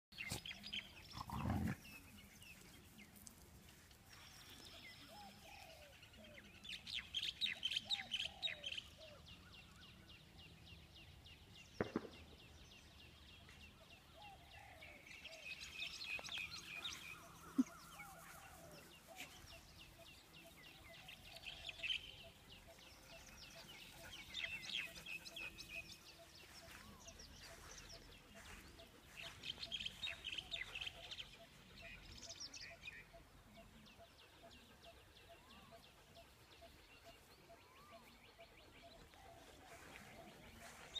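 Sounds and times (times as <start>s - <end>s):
birds chattering: 0.2s - 3.4s.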